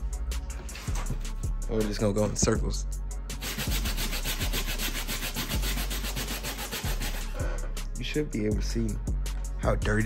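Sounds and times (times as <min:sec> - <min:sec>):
brush scrubbing wet insole: 0:03.4 - 0:07.3.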